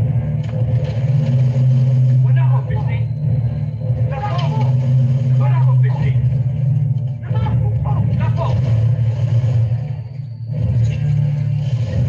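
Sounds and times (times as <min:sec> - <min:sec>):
loud low rumble: 0:00.0 - 0:12.0.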